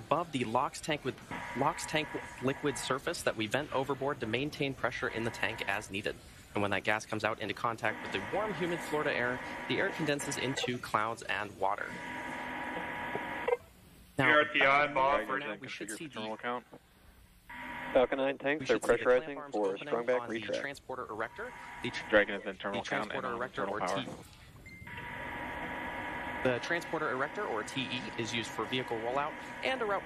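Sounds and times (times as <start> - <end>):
radio channel hiss: 0.0 - 16.8, 17.5 - 30.0
faint steady tones: 0.0 - 30.0.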